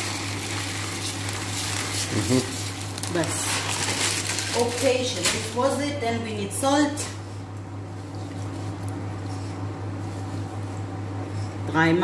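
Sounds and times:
rice simmering in water: 0.0s - 4.4s
steady low hum: 0.0s - 12.0s.

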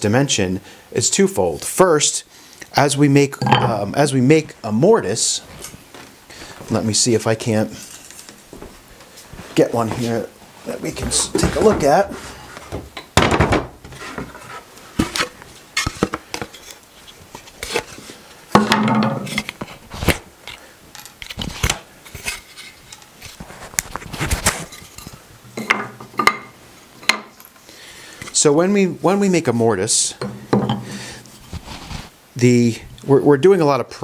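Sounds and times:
wooden boards and tools clattering: 10.9s - 16.7s, 17.6s - 20.2s, 30.2s - 31.0s.

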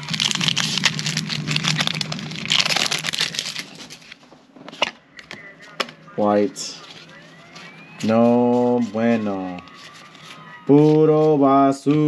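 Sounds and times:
foil wrapper crinkling: 0.0s - 4.2s.

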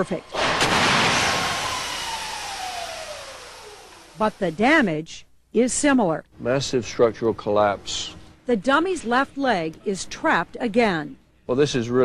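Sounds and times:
loud crash impact: 0.3s - 4.2s
whine falling in pitch: 0.4s - 4.4s.

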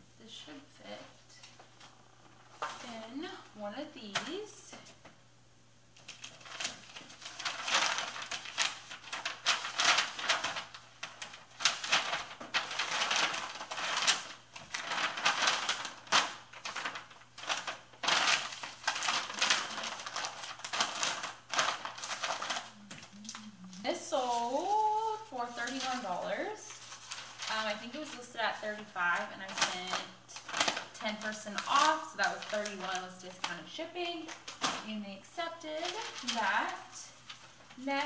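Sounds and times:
packing material crinkling: 6.0s - 38.0s.

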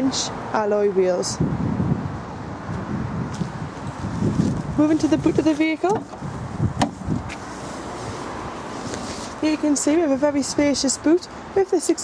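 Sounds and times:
wind on microphone: 0.9s - 11.3s.

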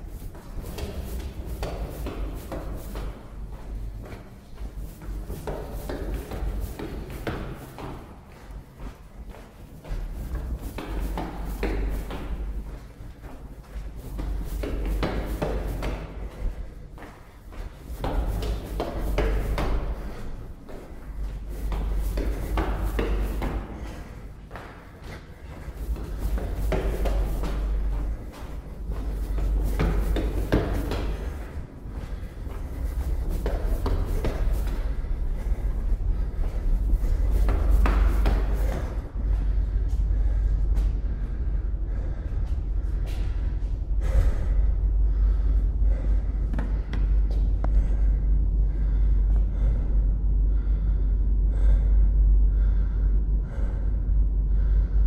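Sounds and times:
footsteps climbing stairs: 0.0s - 48.1s.

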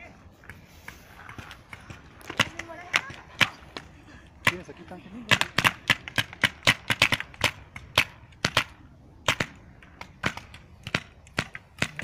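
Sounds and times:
paintball markers firing: 5.3s - 12.0s.

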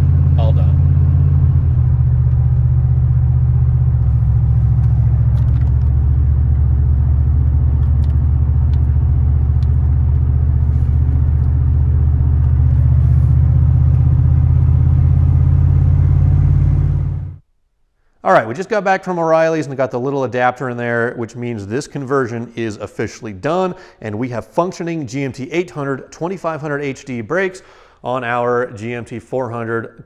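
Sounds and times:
car engine drone at cruise: 0.0s - 17.4s
road rumble: 0.0s - 17.4s.

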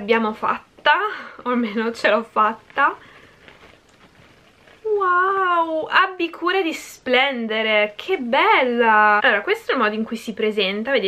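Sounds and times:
tissue paper rustling: 1.8s - 5.6s.

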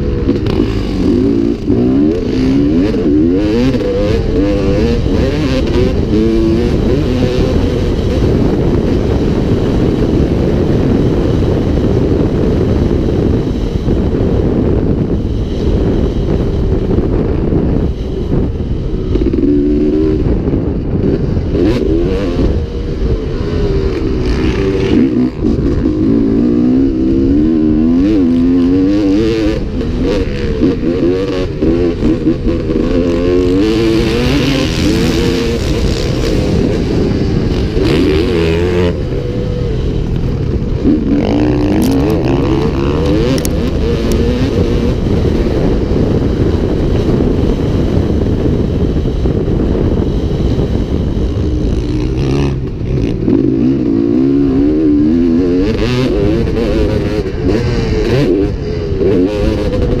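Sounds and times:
motorcycle engine revving: 0.0s - 60.0s.

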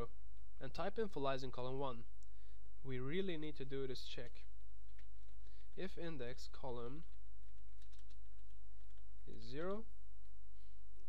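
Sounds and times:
steady low hum: 0.0s - 11.0s
computer keyboard typing: 4.8s - 9.8s.

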